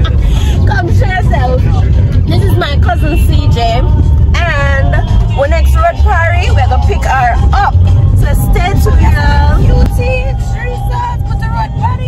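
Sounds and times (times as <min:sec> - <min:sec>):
car rumble from inside: 0:00.0 - 0:12.0
music: 0:00.0 - 0:12.0
voices: 0:00.0 - 0:12.0.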